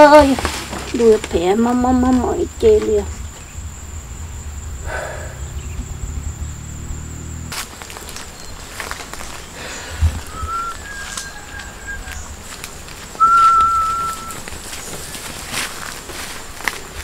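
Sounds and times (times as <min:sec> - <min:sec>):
single-note whistling: 0:10.3 - 0:12.2, 0:13.2 - 0:14.5.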